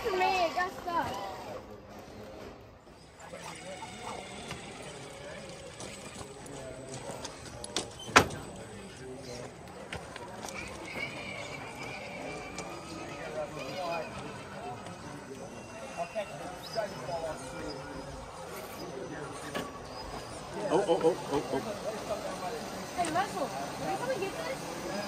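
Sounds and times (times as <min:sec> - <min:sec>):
people talking in background: 0:00.0 - 0:25.0.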